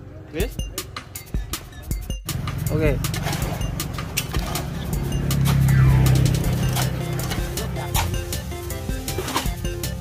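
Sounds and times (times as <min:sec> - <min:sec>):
vehicle engine humming: 0:02.2 - 0:10.0.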